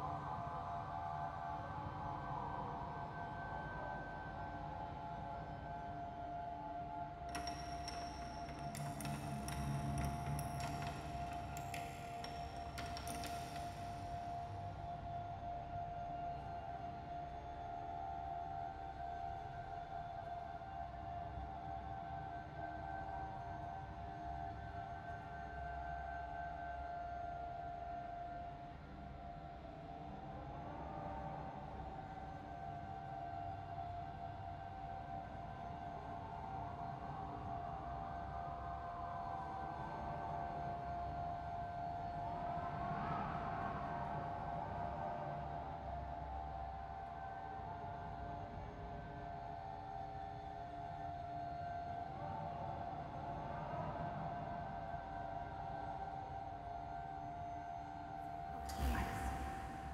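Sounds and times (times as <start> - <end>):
eerie ambient drone: 0.0 - 19.9, 30.2 - 59.9.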